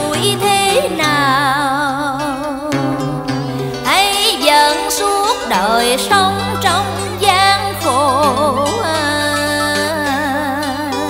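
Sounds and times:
person singing: 0:00.0 - 0:11.0
plucked string instrument sliding notes: 0:00.0 - 0:11.0.

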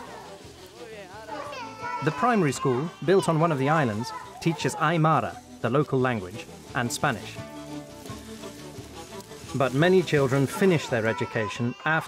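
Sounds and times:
children chattering and calling: 0:00.0 - 0:07.4, 0:09.4 - 0:12.0
narration: 0:00.0 - 0:07.5, 0:09.4 - 0:12.0.

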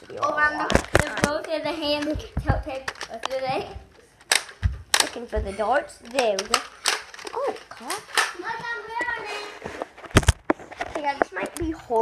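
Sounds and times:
heavy thumps: 0:01.8 - 0:07.0.

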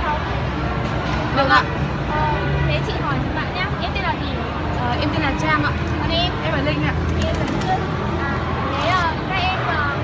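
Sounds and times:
girls talking: 0:01.4 - 0:10.0.

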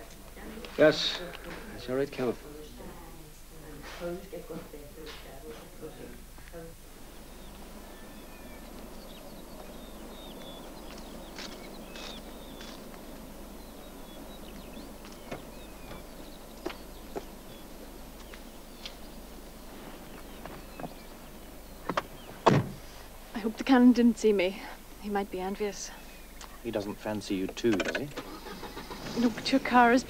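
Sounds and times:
outdoor ambience: 0:00.0 - 0:30.0
car door shutting: 0:15.1 - 0:16.2, 0:21.9 - 0:23.0.

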